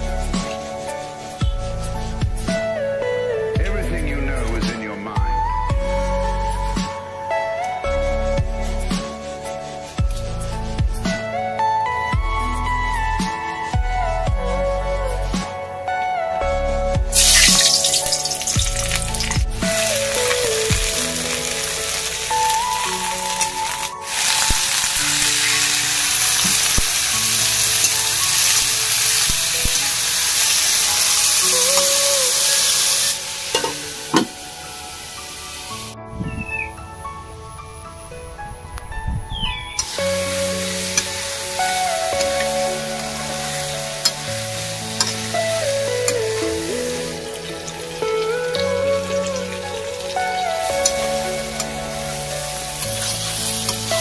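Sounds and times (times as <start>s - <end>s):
background melody: 0.0s - 54.0s
food sizzling in hot oil: 17.1s - 35.9s, 39.8s - 54.0s.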